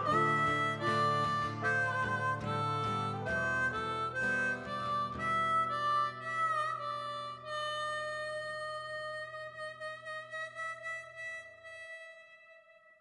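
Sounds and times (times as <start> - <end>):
low keyboard chord: 0.0 - 7.5
harmonica long wavering note: 0.0 - 13.0.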